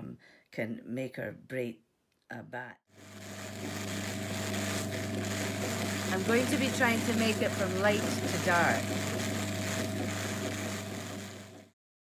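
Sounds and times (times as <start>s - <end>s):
drum carder humming: 3.0s - 11.8s.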